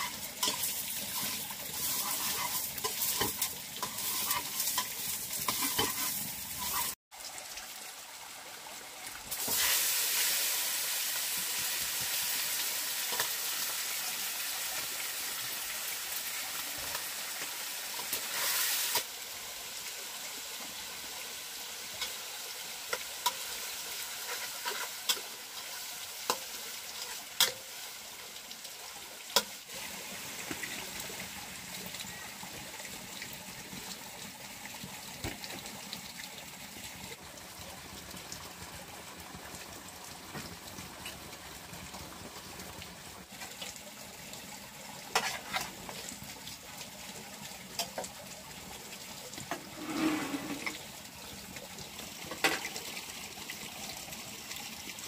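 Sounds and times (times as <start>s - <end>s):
food sizzling in a pan: 0.0s - 7.0s, 9.3s - 34.0s, 45.0s - 46.3s, 49.4s - 51.4s, 52.2s - 53.1s.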